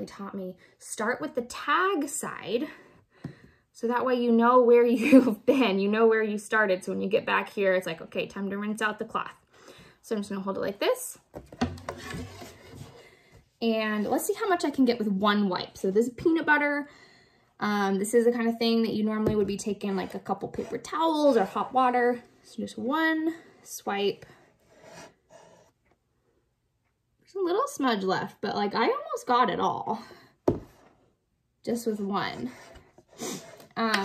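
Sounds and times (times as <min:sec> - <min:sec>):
cutting board rubbing and scraping: 0:11.7 - 0:13.0, 0:20.0 - 0:21.8, 0:24.6 - 0:25.8, 0:32.3 - 0:33.8.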